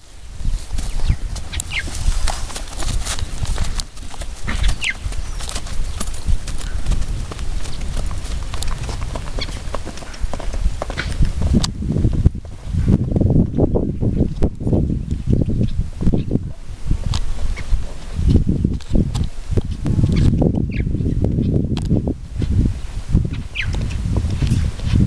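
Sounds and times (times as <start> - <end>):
horse hooves clip-clopping on dirt: 0.5 - 16.1, 17.0 - 20.6.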